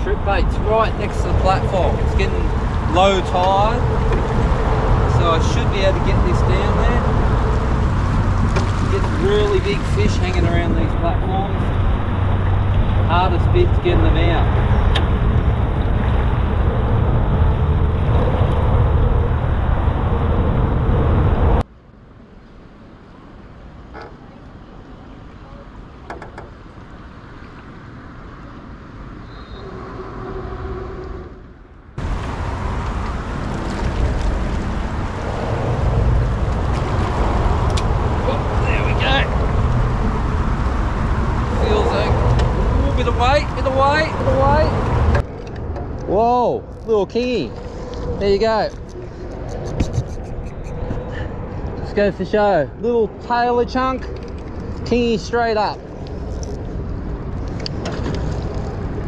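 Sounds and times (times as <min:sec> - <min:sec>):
rushing water: 0:00.0 - 0:20.4, 0:32.0 - 0:45.4
wind rumble on microphone: 0:00.0 - 0:21.7, 0:23.5 - 0:59.0.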